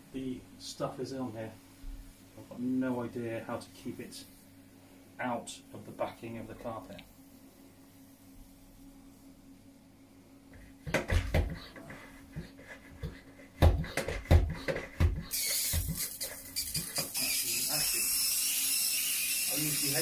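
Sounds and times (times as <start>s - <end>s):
sharp knocks and thumps: 10.8s - 16.0s
pressure sprayer hissing: 14.0s - 20.0s.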